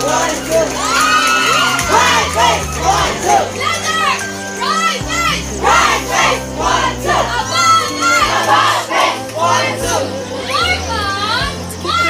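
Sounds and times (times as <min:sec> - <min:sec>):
crowd shouting and cheering: 0:00.0 - 0:12.0
music: 0:00.0 - 0:12.0.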